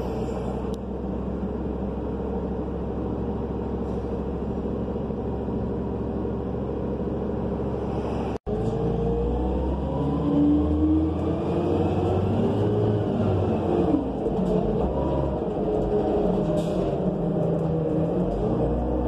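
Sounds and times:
bus accelerating with rising whine: 0.0 - 19.0
bus engine running: 0.0 - 19.0.

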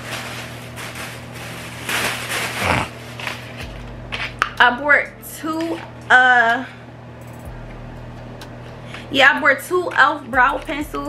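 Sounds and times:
rustling in a plastic bag: 0.0 - 4.3
low steady hum: 0.0 - 11.0.

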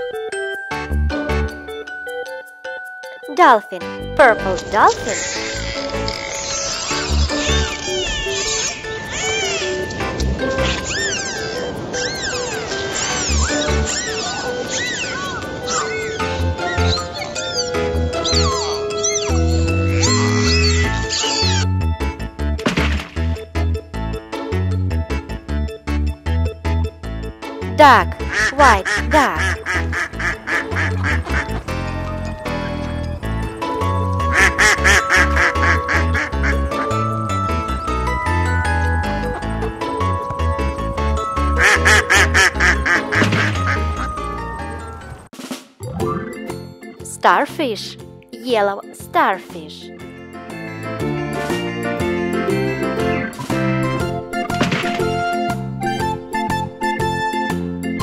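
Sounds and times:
dolphin whistles: 10.7 - 21.6
children's music with bass beat: 27.8 - 44.8
duck quacking: 28.2 - 31.6, 34.3 - 36.6, 41.6 - 44.0.

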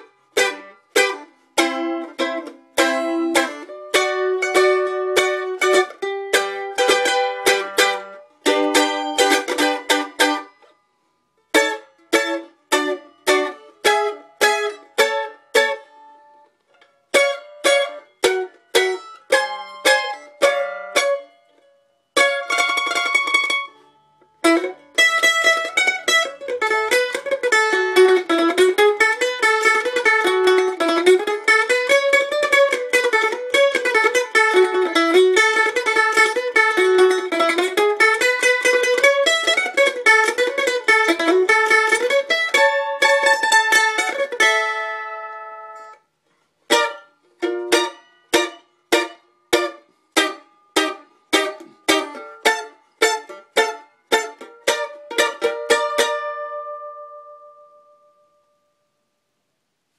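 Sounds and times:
mandolin picking: 0.0 - 59.0
mandolin chords: 0.0 - 59.9.

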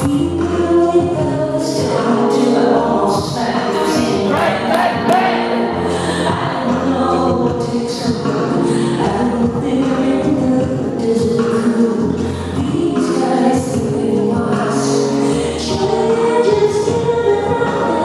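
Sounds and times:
woman singing: 0.0 - 18.0.

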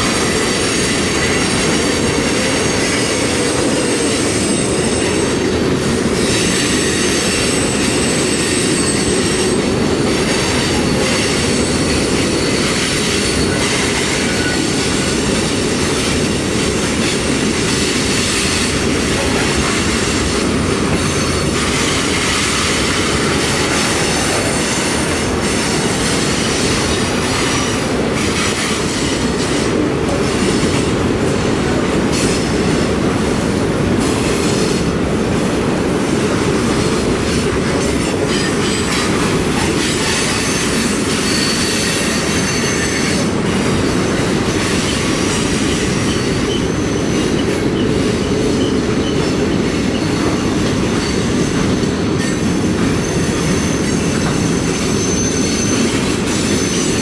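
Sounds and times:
high wheel squeal: 0.0 - 15.7, 17.9 - 29.7, 38.1 - 57.0
steel wheels rumbling on rail: 0.0 - 57.0.

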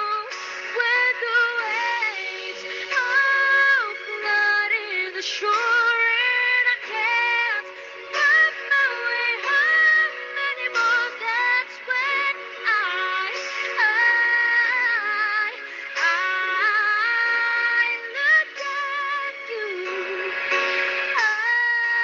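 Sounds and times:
woman singing pop ballad: 0.0 - 22.0.

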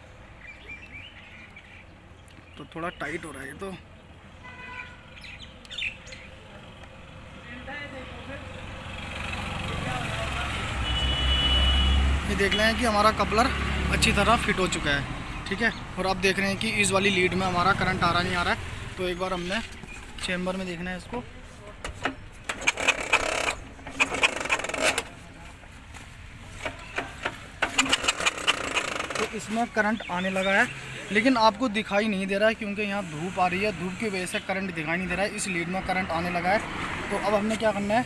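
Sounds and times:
vehicle engine and road noise: 0.0 - 38.0
scooter engine kick-start whirr: 22.0 - 25.2, 26.6 - 29.5.

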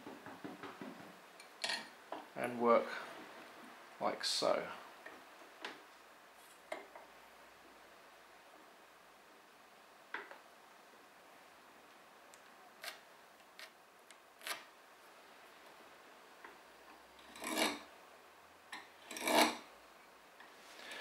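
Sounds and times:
knife scraping wood: 14.4 - 14.7, 17.2 - 17.9, 19.0 - 19.7.

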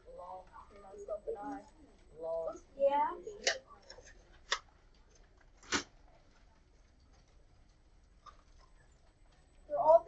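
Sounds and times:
quiet classroom background: 0.0 - 10.0.

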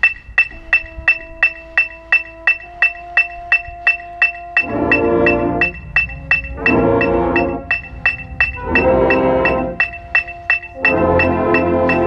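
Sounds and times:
electronic metronome clicking: 0.0 - 12.0
held note: 0.0 - 12.0.

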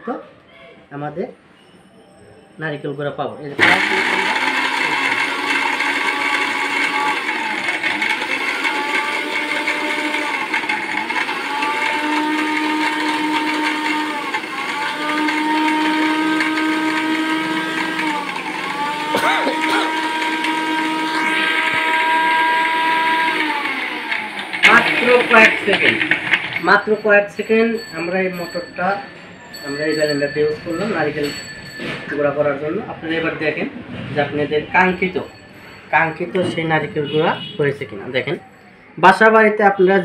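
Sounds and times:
mixer grinder running: 3.6 - 31.3.

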